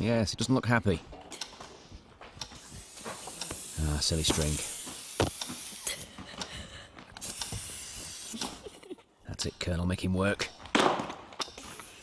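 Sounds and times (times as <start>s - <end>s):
aerosol can spraying: 2.6s - 6.1s, 7.2s - 8.6s.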